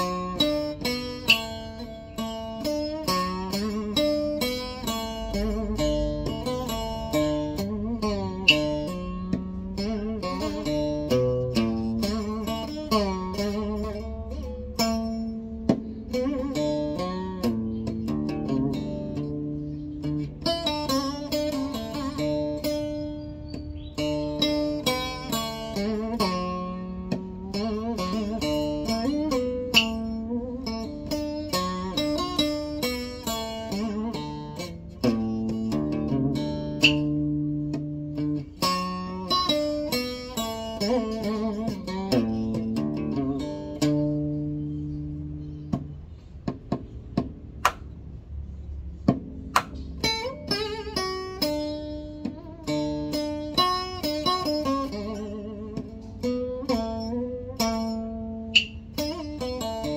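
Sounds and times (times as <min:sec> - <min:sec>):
plucked acoustic guitar melody: 0:00.0 - 0:59.9.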